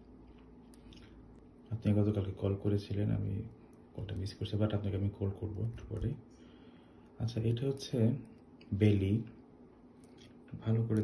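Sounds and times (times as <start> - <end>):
person speaking: 1.6 - 6.3, 10.5 - 11.0.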